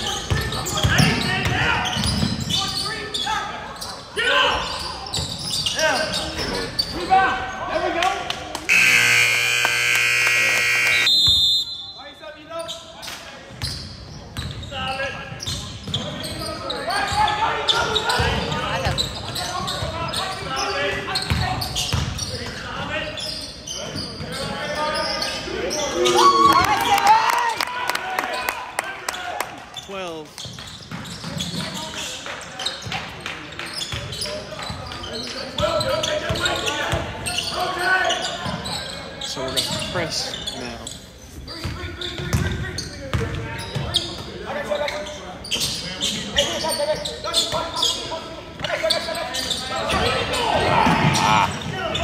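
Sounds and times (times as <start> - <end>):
electronic scoreboard horn: 8.7 - 11.1
indistinct echoing voices: 49.6 - 52.0.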